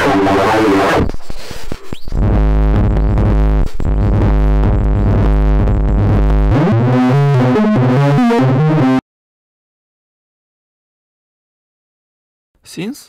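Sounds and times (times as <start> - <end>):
synth buzzing tone: 2.1 - 9.0
synth arpeggio run: 2.2 - 9.0.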